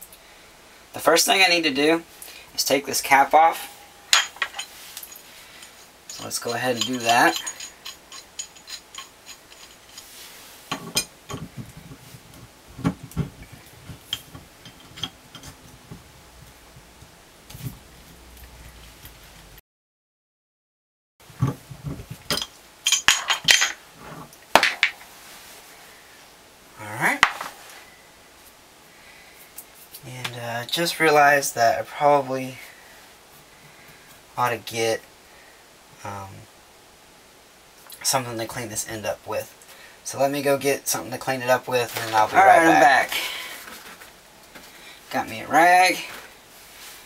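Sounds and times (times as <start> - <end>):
room hiss: 0.0 - 19.6, 21.2 - 47.0
metallic clicks of pipe wrench: 4.2 - 10.1.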